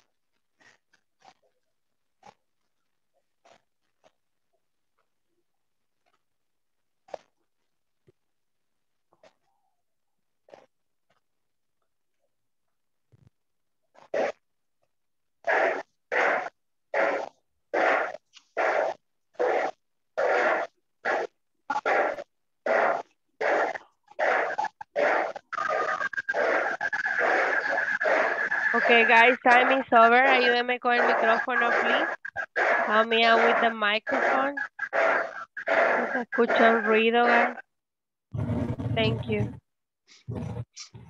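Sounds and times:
dog barking: 15.5 - 37.6
person talking over video call: 28.8 - 32.1, 32.9 - 34.6, 36.1 - 37.6, 39.1 - 39.5.

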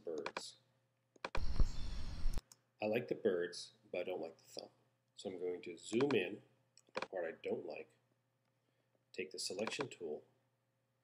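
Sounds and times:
faint bird chirps: 1.4 - 2.4
mouse click: 5.9 - 6.2, 9.6 - 9.9.

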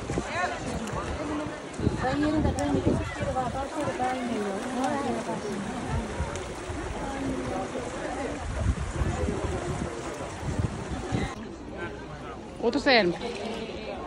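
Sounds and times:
wind buffeting microphone: 0.0 - 11.4
people talking: 0.0 - 14.0.

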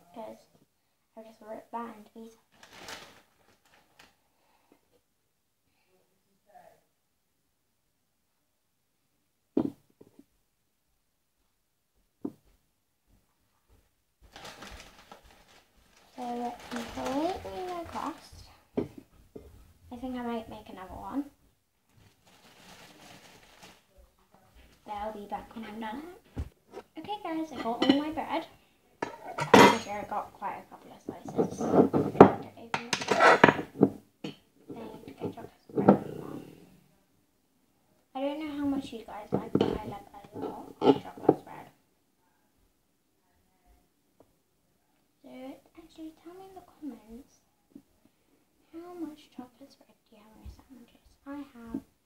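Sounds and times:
rustling: 2.4 - 4.3, 13.2 - 21.1, 21.8 - 27.6.

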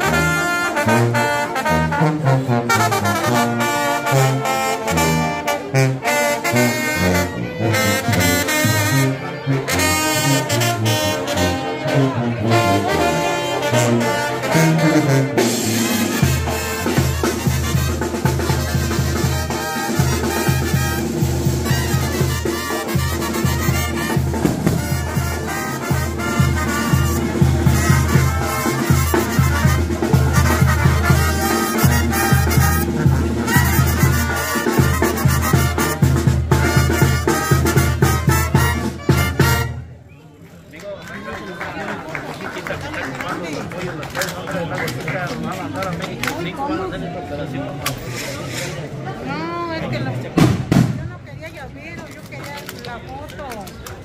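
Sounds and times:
brass band playing live: 0.0 - 40.1, 47.8 - 51.3.

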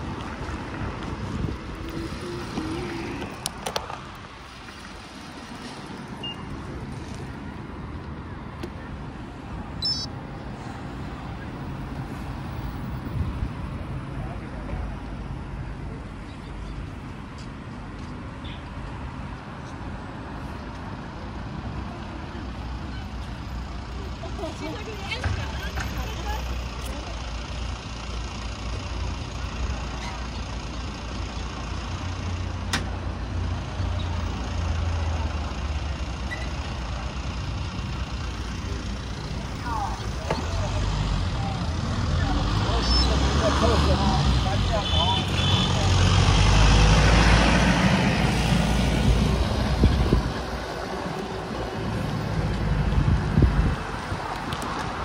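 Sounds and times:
highway traffic rumble: 0.0 - 55.0
vehicle passing close: 39.1 - 55.0.

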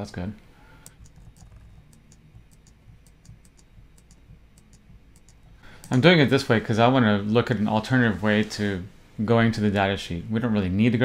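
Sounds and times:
faint low hum: 0.0 - 11.0
keyboard keystrokes: 0.8 - 6.0.

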